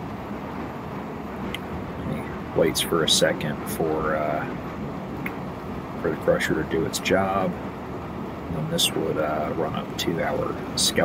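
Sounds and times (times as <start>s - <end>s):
heavy machinery rumbling: 0.0s - 11.0s
person speaking: 8.5s - 11.0s.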